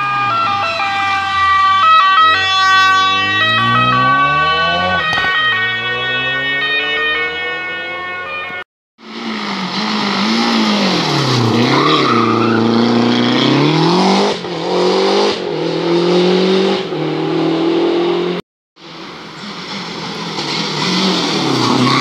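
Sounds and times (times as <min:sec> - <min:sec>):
rally car engine revving: 0:02.4 - 0:08.0, 0:09.0 - 0:18.4.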